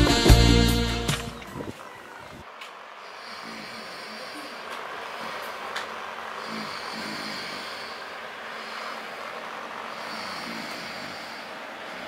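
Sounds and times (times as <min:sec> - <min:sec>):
man snoring: 0:03.1 - 0:12.0.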